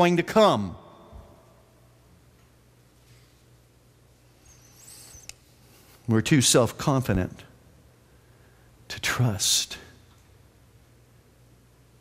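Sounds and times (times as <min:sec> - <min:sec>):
faint low electrical hum: 0:00.0 - 0:12.0
faint high-pitched squeak: 0:04.4 - 0:05.5.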